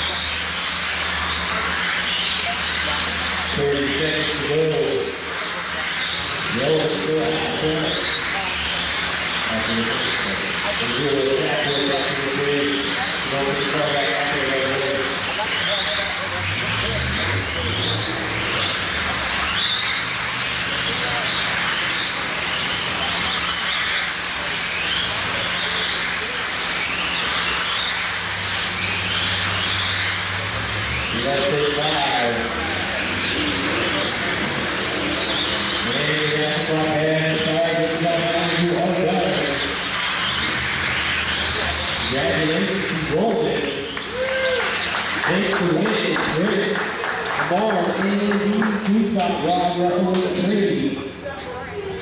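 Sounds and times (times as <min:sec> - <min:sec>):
electric motors whining: 0:00.0 - 0:52.0.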